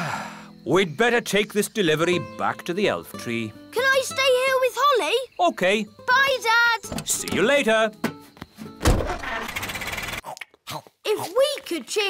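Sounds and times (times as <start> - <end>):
thump: 8.8 - 9.4
fast mechanical rattle: 9.1 - 10.2.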